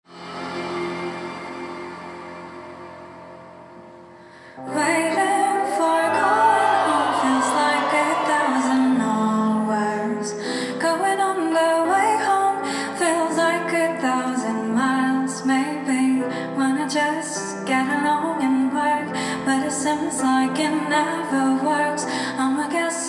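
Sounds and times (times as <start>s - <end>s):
woman singing into a microphone: 4.6s - 23.0s.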